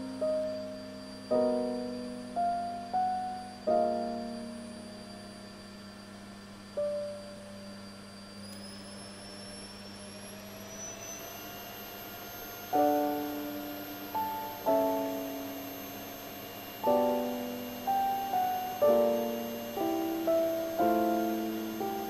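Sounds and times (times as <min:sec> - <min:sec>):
piano chords: 0:00.0 - 0:05.8, 0:12.6 - 0:22.0
vacuum cleaner running: 0:00.0 - 0:22.0.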